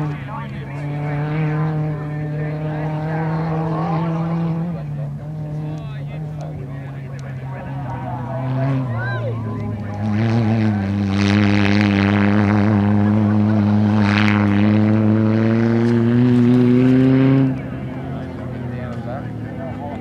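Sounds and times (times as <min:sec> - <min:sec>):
racing buggy engine at high revs: 0:00.0 - 0:20.0.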